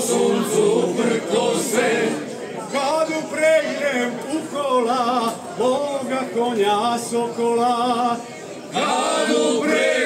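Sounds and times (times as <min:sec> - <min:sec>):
male choir singing unaccompanied: 0:00.0 - 0:10.0.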